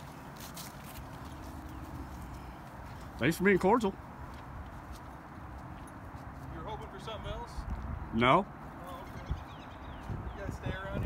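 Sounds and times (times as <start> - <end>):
footsteps on grass and gravel: 0.0 - 8.1.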